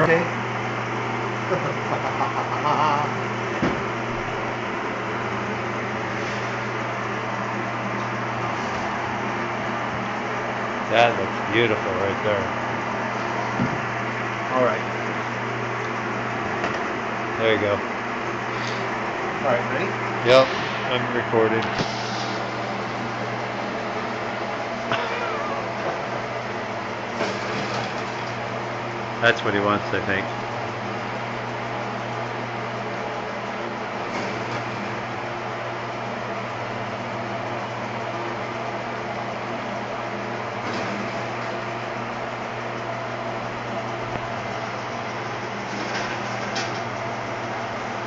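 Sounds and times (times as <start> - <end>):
meat shredder humming: 0.0 - 20.8, 21.7 - 48.0.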